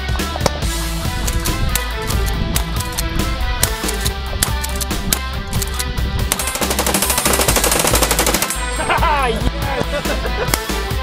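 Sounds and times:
rock music with electric guitar: 0.0 - 11.0
submachine gun automatic fire: 6.4 - 8.7.

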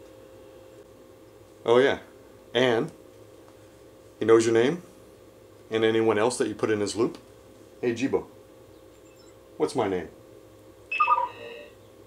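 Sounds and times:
descending beep tones: 10.9 - 11.7
electronic chime: 10.9 - 11.8.

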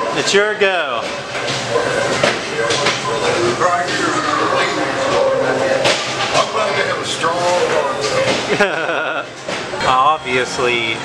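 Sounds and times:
rotating drum mechanical noise: 0.0 - 11.0
voices: 0.1 - 11.0.

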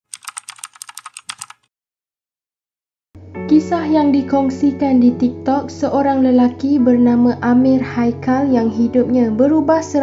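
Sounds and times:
computer keyboard typing: 0.0 - 1.7.

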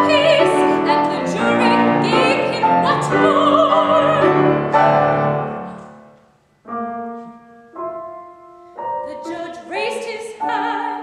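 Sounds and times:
soprano singing: 0.0 - 6.2, 8.8 - 11.0
piano chords: 0.0 - 11.0.

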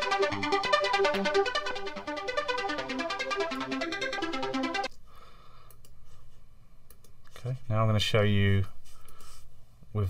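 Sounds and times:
arpeggiated synthesizer with phaser: 0.0 - 4.9.

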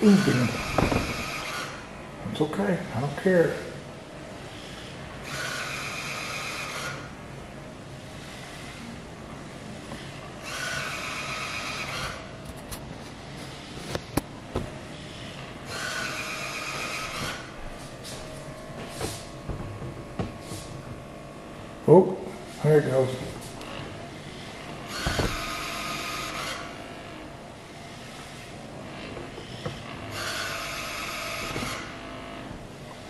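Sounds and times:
robot motor hum: 0.0 - 1.9, 4.5 - 7.1, 9.7 - 33.0
buzzing bursts: 23.4 - 32.5.

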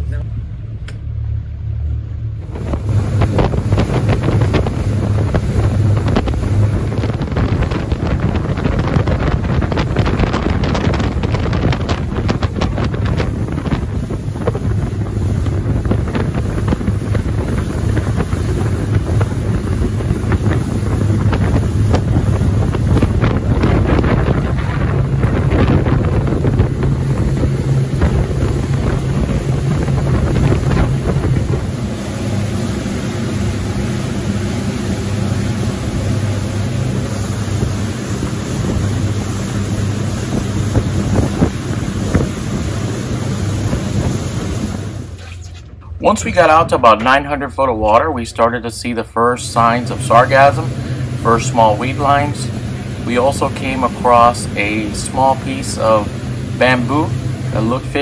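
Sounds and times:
boat engines running: 0.0 - 58.0
wind buffeting microphone: 2.4 - 45.2, 49.6 - 58.0.

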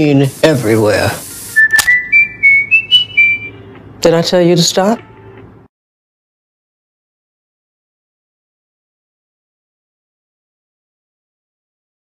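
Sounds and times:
whistled rising notes: 1.6 - 3.6
sharp click: 1.7 - 2.0.

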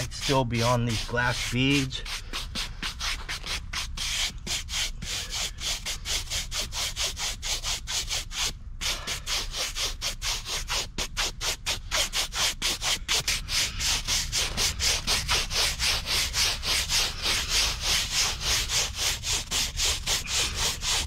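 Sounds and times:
scrub brush scrubbing concrete: 0.0 - 21.0.

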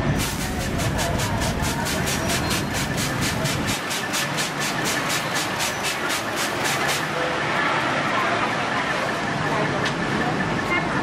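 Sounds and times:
street noise with low rumble: 0.0 - 11.0
water spray spurts: 0.1 - 7.2.

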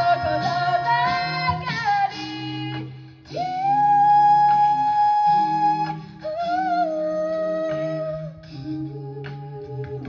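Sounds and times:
hummed backing voices and bass: 0.0 - 10.0.

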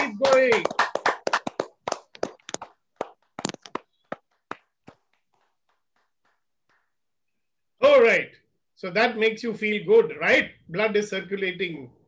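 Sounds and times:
hands clapping: 0.0 - 7.2.

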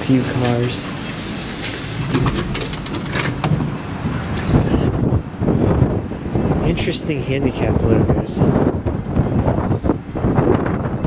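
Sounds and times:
wind buffeting microphone: 0.9 - 11.0
glass door clicks: 1.9 - 4.4.

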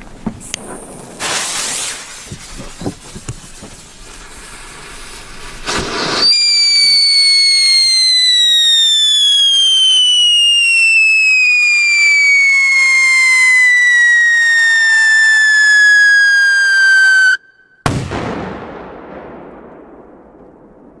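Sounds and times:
whistling firework shrieking: 0.7 - 2.2, 4.4 - 17.8
loud firework bang: 17.8 - 21.0.

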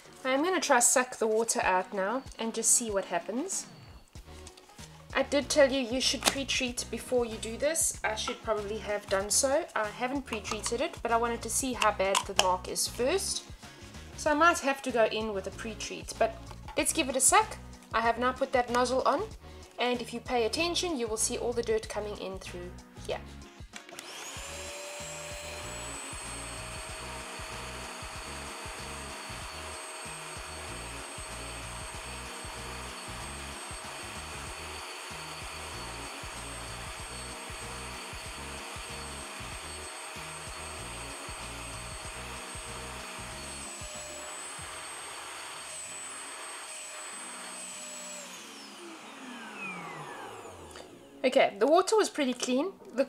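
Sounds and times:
spot cleaner suction motor: 23.9 - 51.1.

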